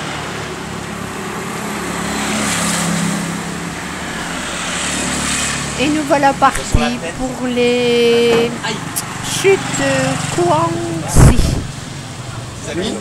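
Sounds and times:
broad rushing noise: 0.0 - 13.0.

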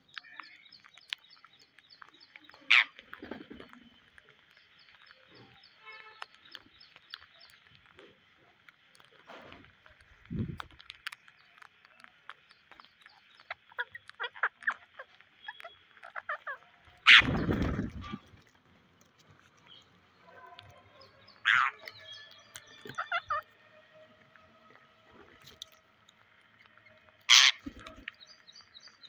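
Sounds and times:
birds pecking on concrete: 0.0 - 29.0
wings flapping: 2.7 - 3.9, 17.0 - 18.5, 27.3 - 28.2.

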